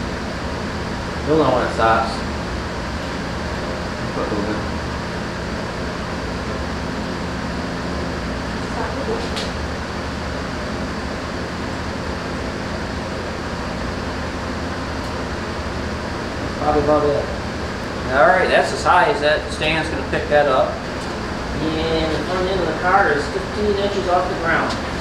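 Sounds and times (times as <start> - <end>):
fan-like hum and hiss: 0.0 - 25.0.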